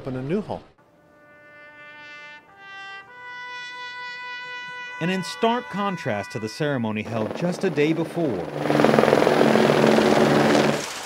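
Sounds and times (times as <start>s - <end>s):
helicopters flying overhead: 7.0s - 10.9s.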